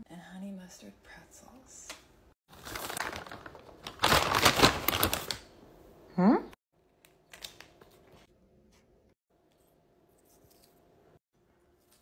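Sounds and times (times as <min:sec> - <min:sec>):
crackly crinkling: 0:02.5 - 0:05.5
snack packaging rustling: 0:02.5 - 0:05.5.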